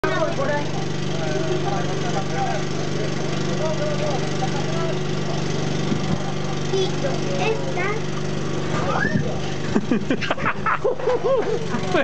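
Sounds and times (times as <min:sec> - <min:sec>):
people talking: 0:00.0 - 0:05.4, 0:06.1 - 0:08.0
lawn mower engine running: 0:00.0 - 0:12.0.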